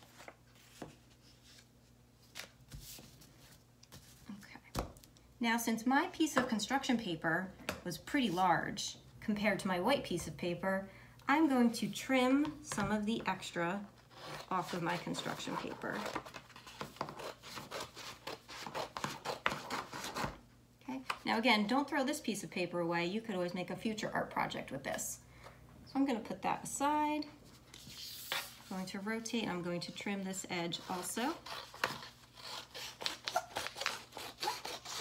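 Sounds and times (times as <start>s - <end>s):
scissors cutting paper: 30.9s - 35.0s.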